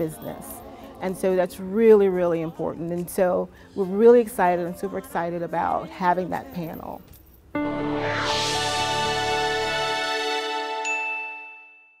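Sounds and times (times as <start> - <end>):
sustained jingle chord: 7.6 - 12.0
bright chime ding: 10.8 - 12.0.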